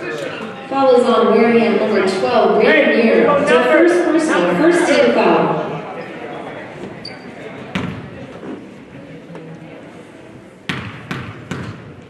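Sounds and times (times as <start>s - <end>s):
basketball bouncing on wooden floor: 7.7s - 8.0s, 10.7s - 11.9s.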